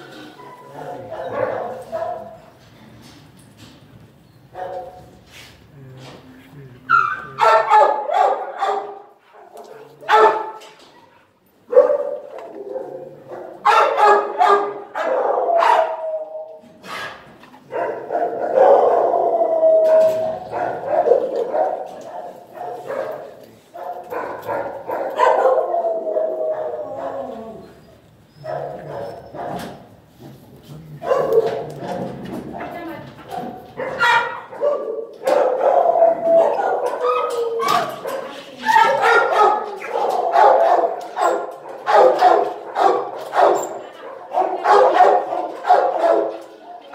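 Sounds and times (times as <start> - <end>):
dogs barking: 0.8 - 2.6, 6.9 - 10.6, 11.6 - 16.2, 16.9 - 27.6, 28.4 - 29.8, 31.0 - 32.2, 33.4 - 46.9.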